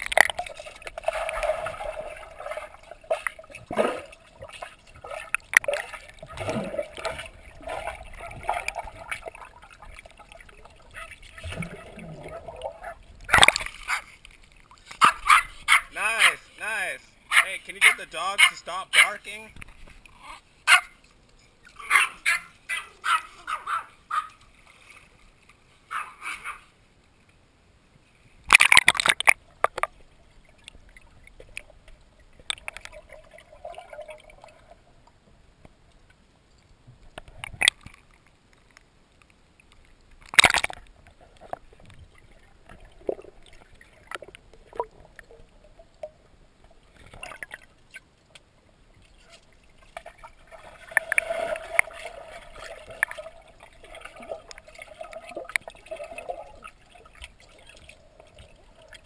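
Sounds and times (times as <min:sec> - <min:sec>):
underwater gurgling and sloshing: 0:00.0 - 0:18.4, 0:19.5 - 0:59.0
small dogs barking: 0:15.0 - 0:16.4, 0:17.3 - 0:19.2, 0:20.7 - 0:20.9, 0:21.8 - 0:24.4, 0:25.9 - 0:26.6.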